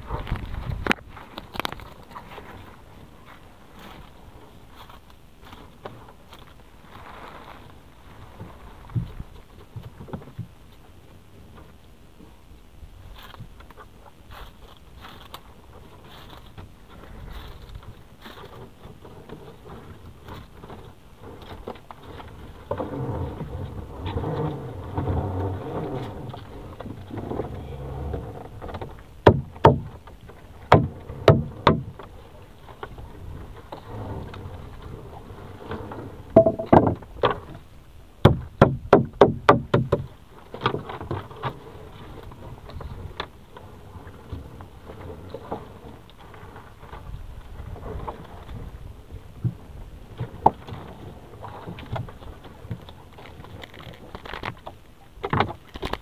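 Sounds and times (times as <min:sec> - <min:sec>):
low droning tone: 0:22.7 - 0:28.7, 0:36.3 - 0:36.8
net knocking against boat hull: 0:29.2 - 0:29.9, 0:30.7 - 0:31.9, 0:36.4 - 0:37.0, 0:38.2 - 0:40.1.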